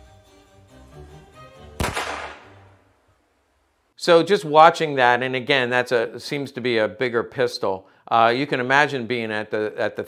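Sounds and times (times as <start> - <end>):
background music: 0.0 - 2.9
pistol shot: 1.8 - 2.9.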